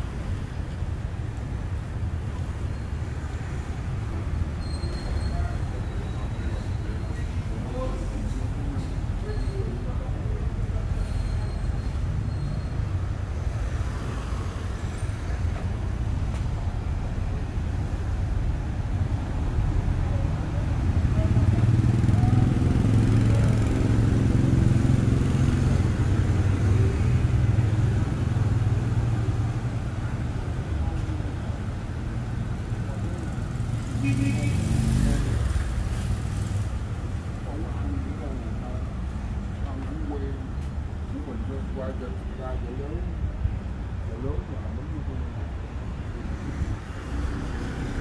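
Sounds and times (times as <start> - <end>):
motorbike and scooter engines: 0.0 - 48.0.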